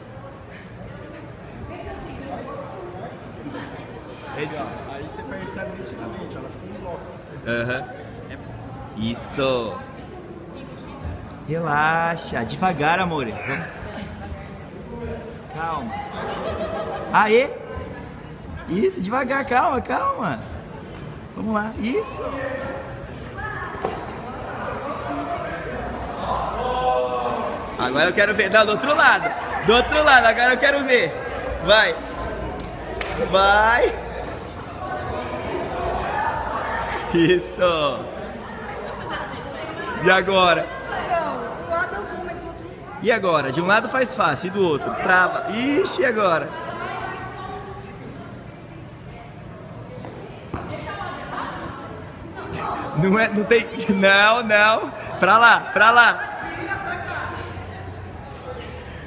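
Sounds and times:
voices talking in echoing hall: 0:00.0 - 0:59.0.

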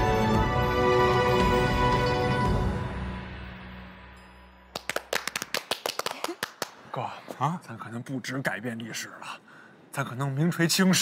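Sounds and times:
men clapping hands: 0:04.7 - 0:06.9.

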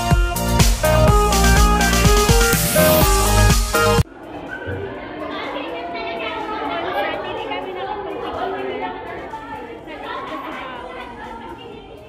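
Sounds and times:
people chattering: 0:04.0 - 0:12.0.

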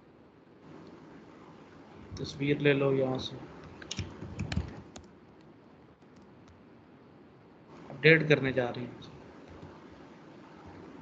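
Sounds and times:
computer keyboard key clicks: 0:03.7 - 0:05.1.

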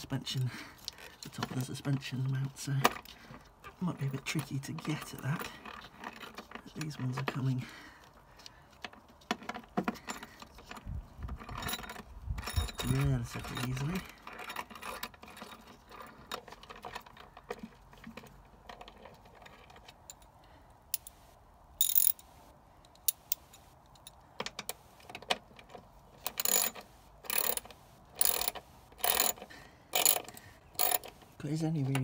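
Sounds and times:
ratchet wrench clicking: 0:21.8 - 0:22.3, 0:26.2 - 0:31.1.

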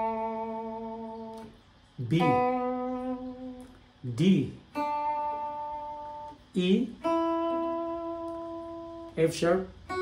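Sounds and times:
guitar plucked notes: 0:00.0 - 0:10.0.

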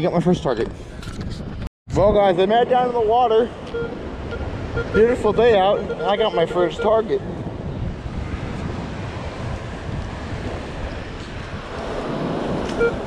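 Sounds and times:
wind buffeting microphone: 0:00.0 - 0:13.0
surf washing: 0:02.2 - 0:13.0
metal detector tone: 0:03.7 - 0:07.1, 0:12.8 - 0:13.0.

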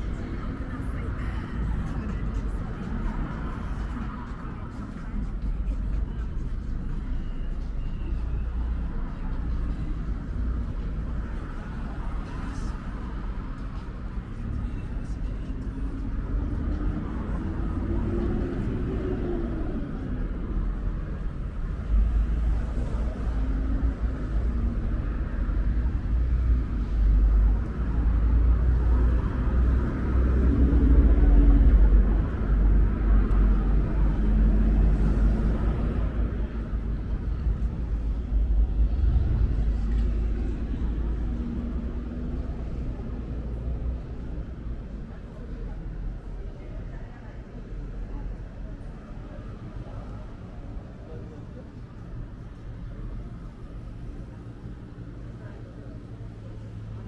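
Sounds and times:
passers-by talking faintly: 0:00.0 - 0:57.0
road traffic rumble: 0:00.0 - 0:57.0.

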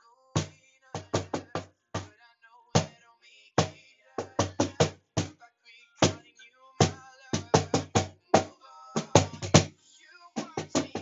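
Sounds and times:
cajon hand strikes: 0:06.8 - 0:09.7.

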